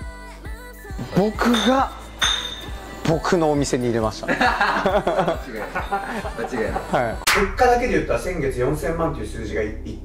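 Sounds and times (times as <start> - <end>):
man talking: 1.0 - 2.0, 3.0 - 4.4, 5.1 - 10.0
bright glass-like ping: 1.5 - 2.8.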